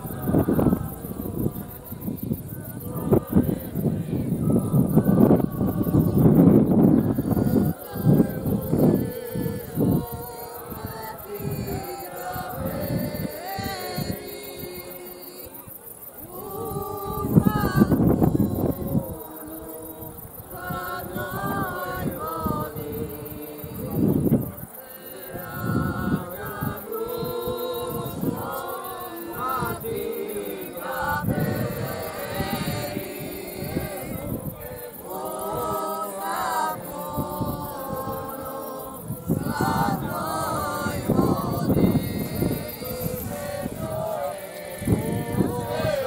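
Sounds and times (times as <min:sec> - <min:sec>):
group of people singing: 0:00.0 - 0:46.0.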